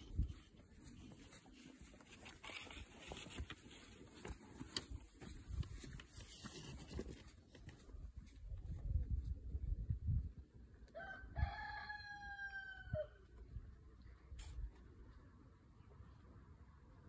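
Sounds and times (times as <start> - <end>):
footsteps and hooves on sand: 0.0 - 10.4.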